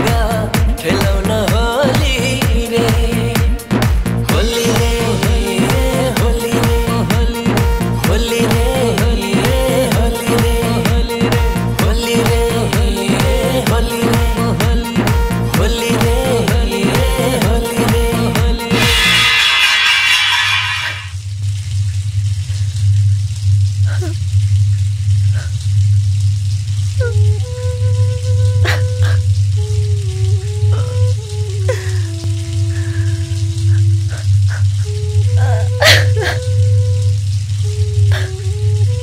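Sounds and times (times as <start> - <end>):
low drone: 18.1 - 21.2
slow melody of held notes: 27.0 - 39.0.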